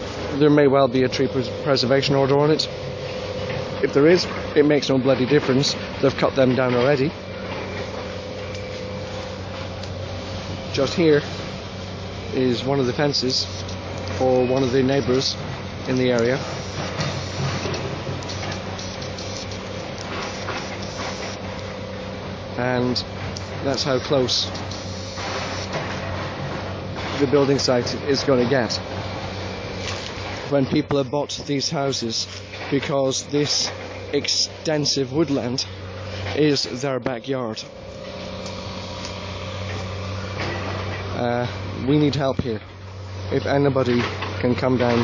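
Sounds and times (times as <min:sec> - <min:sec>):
construction machinery engines droning: 0:00.0 - 0:45.0.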